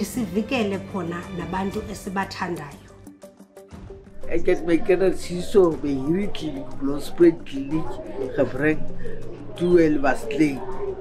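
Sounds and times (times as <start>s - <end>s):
woman speaking: 0.0s - 2.9s.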